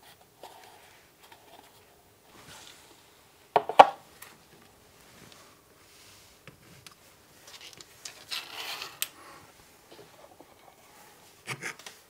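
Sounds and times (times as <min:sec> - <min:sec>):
hands handling plastic case: 0:06.5 - 0:09.2.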